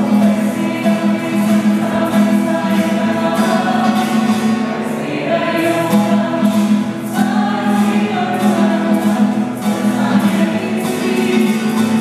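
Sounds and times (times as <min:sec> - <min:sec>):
strummed acoustic guitar: 0:00.0 - 0:12.0
women singing in unison: 0:00.1 - 0:12.0.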